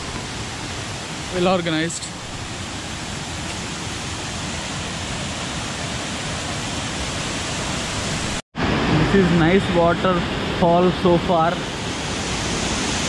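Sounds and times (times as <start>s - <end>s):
waterfall rushing over rocks: 0.0s - 13.0s.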